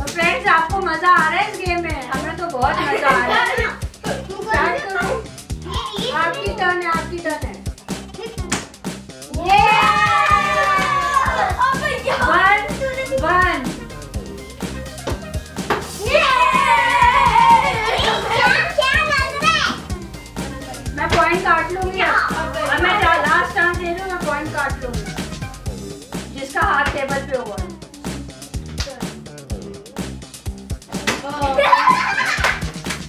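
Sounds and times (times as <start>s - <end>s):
background music: 0.0s - 33.0s
children talking and calling out: 1.4s - 14.1s, 15.9s - 25.2s, 30.8s - 32.2s.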